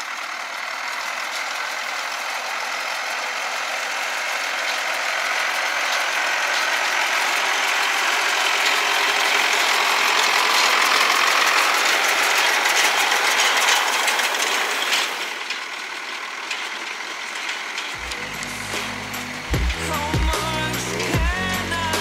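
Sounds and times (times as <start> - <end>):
baler mechanism clattering: 0.0 - 22.0
tractor diesel engine running: 0.0 - 22.0.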